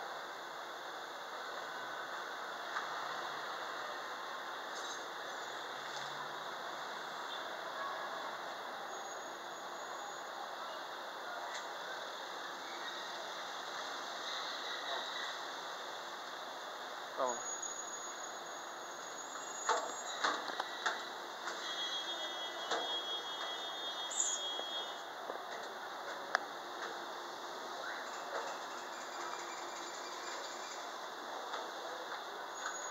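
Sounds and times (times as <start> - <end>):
distant street traffic: 0.0 - 32.9
faint high squeaks: 17.2 - 25.0.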